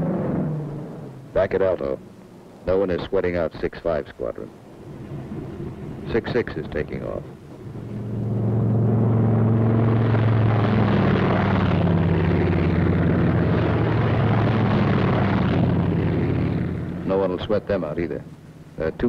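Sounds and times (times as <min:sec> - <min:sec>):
aircraft radial engine drone: 0:00.0 - 0:19.0.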